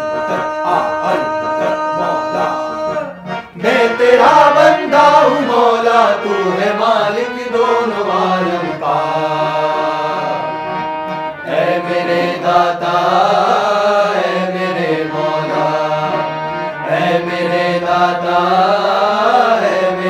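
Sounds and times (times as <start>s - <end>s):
men singing a chant: 0.0s - 10.6s, 11.5s - 20.0s
harmonium drone: 0.0s - 20.0s.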